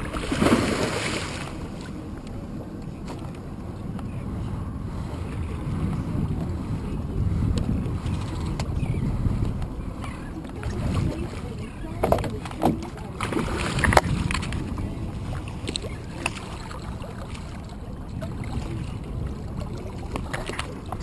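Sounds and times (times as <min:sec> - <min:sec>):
shark thrashing splash: 0:00.0 - 0:01.6
water moving against boat hull: 0:00.0 - 0:21.0
wind on microphone: 0:00.0 - 0:21.0.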